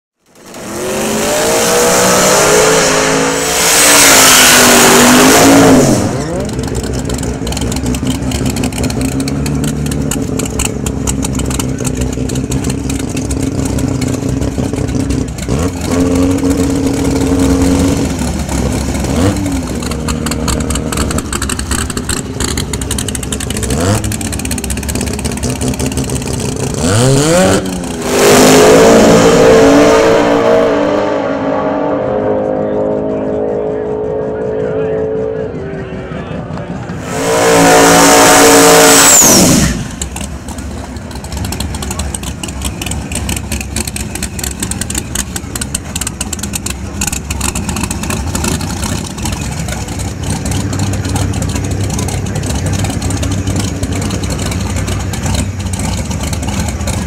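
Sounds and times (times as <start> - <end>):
drag car engine revving: 0.2 - 57.0.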